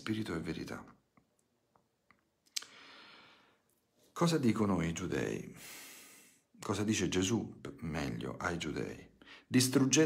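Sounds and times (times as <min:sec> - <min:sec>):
mouth click: 0:02.1 - 0:02.8
man inhaling: 0:02.6 - 0:03.7, 0:05.6 - 0:06.5.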